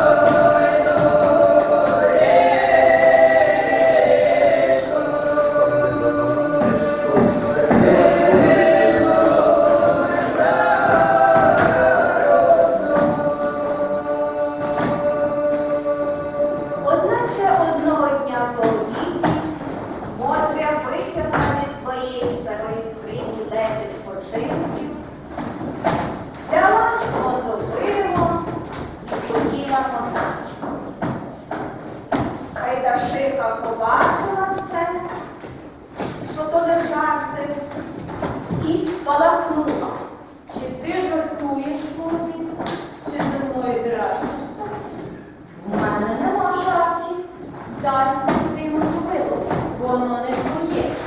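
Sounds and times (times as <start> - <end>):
dull thumps: 0.0 - 41.2
woman speaking in echoing hall: 16.8 - 25.2, 26.4 - 30.7, 32.4 - 51.0.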